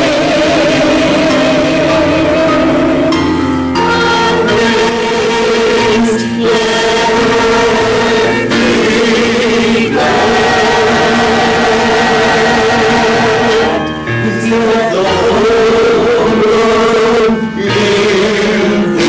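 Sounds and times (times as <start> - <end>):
choir singing a hymn: 0.0 - 19.0
piano accompaniment: 0.0 - 19.0.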